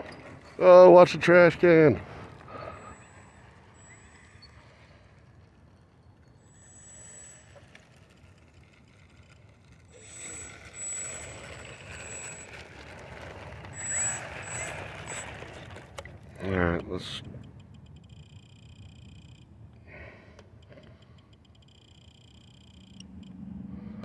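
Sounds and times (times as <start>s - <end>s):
thin high whine: 2.4s - 19.5s, 21.0s - 24.0s
electric motor whining: 6.5s - 19.4s.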